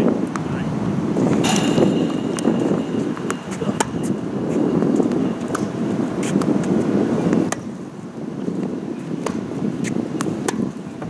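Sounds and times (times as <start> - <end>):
wind noise on microphone: 0.0 - 11.0
tennis ball bounces: 1.3 - 7.7, 9.2 - 10.8
tennis racket strikes: 1.4 - 6.5.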